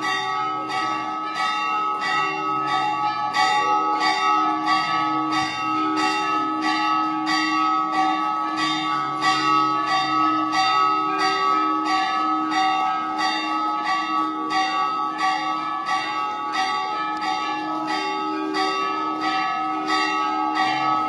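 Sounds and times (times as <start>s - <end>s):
temple bells ringing: 0.0s - 21.0s.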